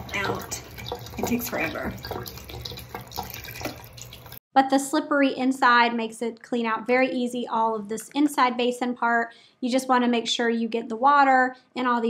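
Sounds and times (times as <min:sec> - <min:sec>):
tap water splashing into sink: 0:00.0 - 0:04.4.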